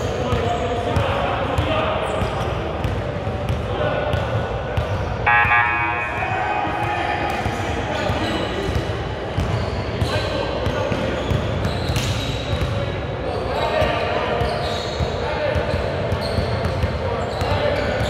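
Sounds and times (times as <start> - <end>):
players' voices in a hall: 0.0 - 18.0.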